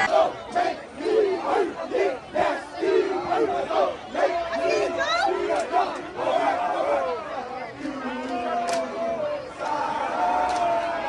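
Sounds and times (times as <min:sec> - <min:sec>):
crowd noise: 0:00.0 - 0:11.0
men chanting rhythmically: 0:00.0 - 0:11.0.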